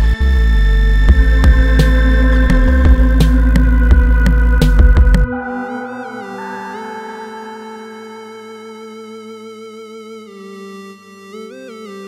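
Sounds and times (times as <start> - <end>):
sustained synth chords: 0.0 - 12.0.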